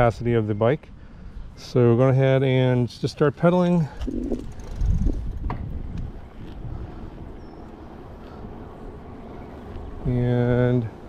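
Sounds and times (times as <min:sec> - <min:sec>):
tyres rolling on asphalt: 0:03.7 - 0:11.0
wind on microphone: 0:04.0 - 0:07.5.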